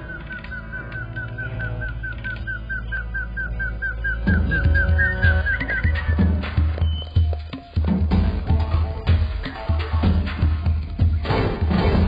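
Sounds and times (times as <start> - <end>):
heavy drum beats: 4.3 - 12.0.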